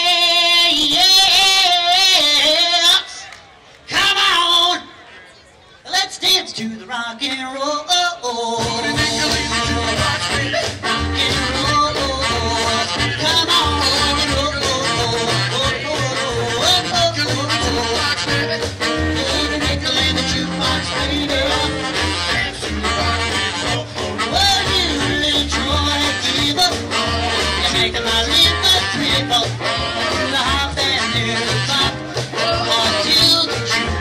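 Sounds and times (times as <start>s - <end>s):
live rock and roll band: 7.9s - 34.0s.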